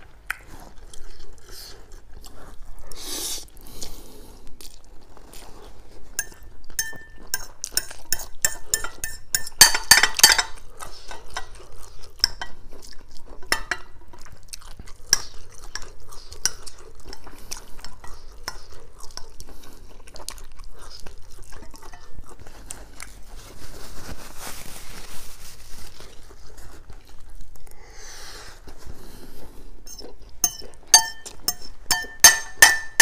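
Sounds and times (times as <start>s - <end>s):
fork scraping ceramic bowl: 6.2s - 12.6s, 13.4s - 14.2s, 15.1s - 19.4s, 21.7s - 22.2s, 29.8s - 33.0s.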